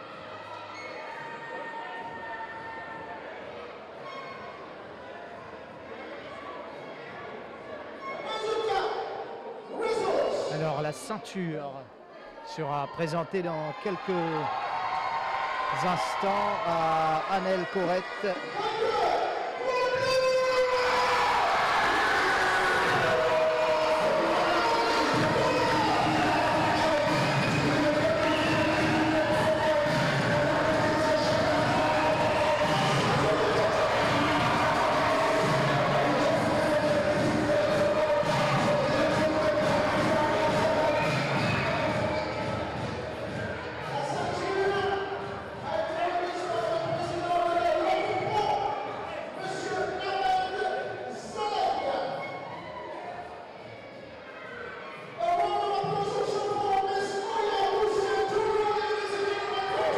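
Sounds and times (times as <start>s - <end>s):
crowd cheering and shouting: 0.0s - 4.2s, 12.3s - 59.9s.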